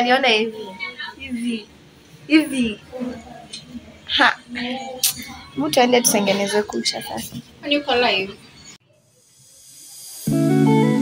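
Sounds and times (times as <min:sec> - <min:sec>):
woman speaking: 0:00.0 - 0:01.7, 0:02.3 - 0:08.5
faint hiss: 0:09.0 - 0:11.0.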